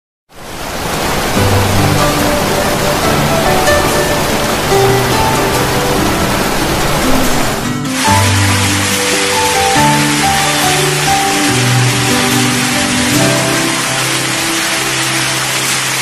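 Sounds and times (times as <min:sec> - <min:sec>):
waterfall rushing: 0:00.3 - 0:16.0
instrumental music: 0:01.4 - 0:16.0.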